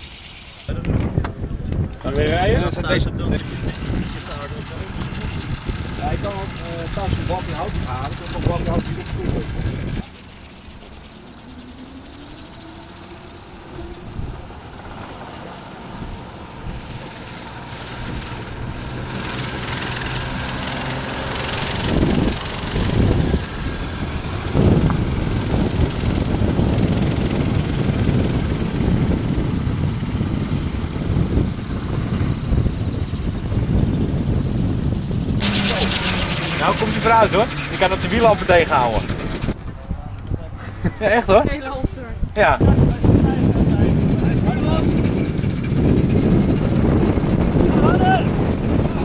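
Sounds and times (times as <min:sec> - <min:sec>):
rotor whirring: 0:00.0 - 0:39.6, 0:41.1 - 0:49.0
faint hum rising in pitch: 0:00.0 - 0:40.2
gusty wind noise: 0:00.0 - 0:49.0.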